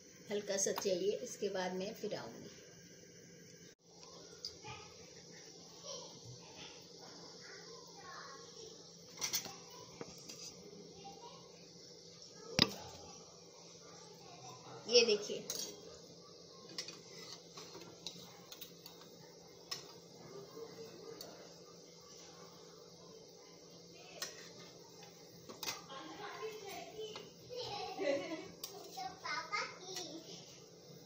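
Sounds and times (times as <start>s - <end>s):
metal spoon clinking on steel pan: 15.4s - 15.8s.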